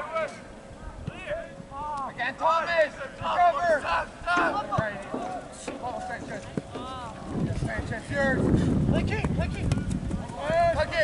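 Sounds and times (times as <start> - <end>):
distant shouting voices: 0.0 - 8.0.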